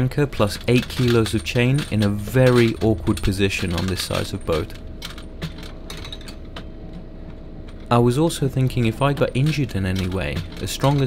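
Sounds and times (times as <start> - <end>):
low steady hum: 0.0 - 11.0
anchor chain clinking: 0.4 - 7.0, 8.8 - 11.0.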